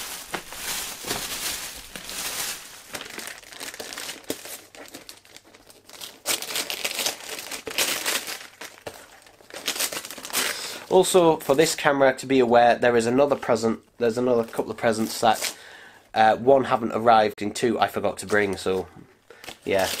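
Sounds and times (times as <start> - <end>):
packaging crinkling and rustling: 0.0 - 11.8, 18.2 - 20.0.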